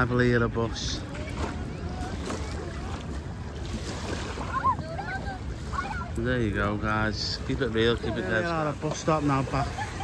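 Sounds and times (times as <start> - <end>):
distant voices: 0.0 - 10.0
water lapping at shore: 0.0 - 10.0.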